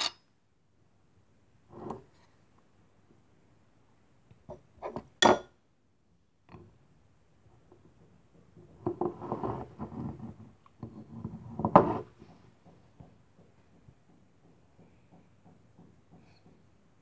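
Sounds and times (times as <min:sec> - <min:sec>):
glass clink: 0:05.2 - 0:05.5.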